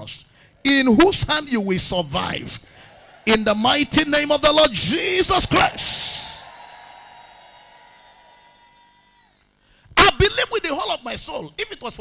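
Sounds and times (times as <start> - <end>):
man's voice: 3.3 - 6.4.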